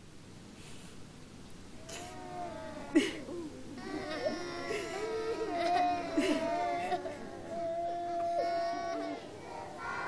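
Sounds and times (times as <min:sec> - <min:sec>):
child crying: 0:01.8 - 0:10.0.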